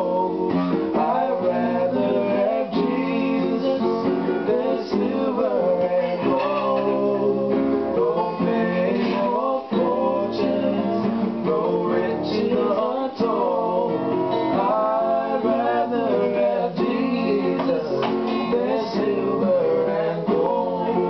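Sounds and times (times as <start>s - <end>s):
acoustic guitars and ukulele strummed: 0.0s - 21.0s
men singing a gospel song: 0.0s - 21.0s.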